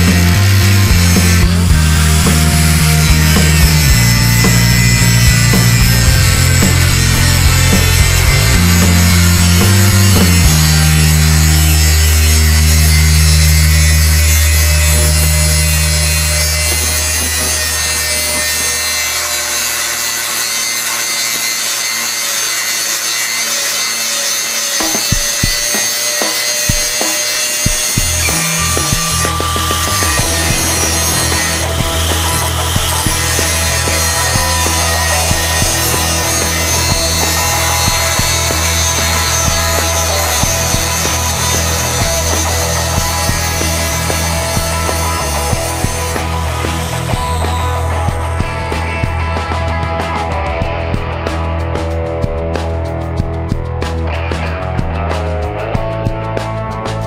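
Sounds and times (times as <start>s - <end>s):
angle grinder cutting steel: 0.0s - 53.2s.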